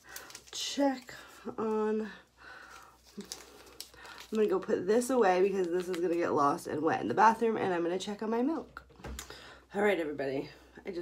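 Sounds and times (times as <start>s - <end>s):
paper packet crinkling: 0.0s - 6.6s.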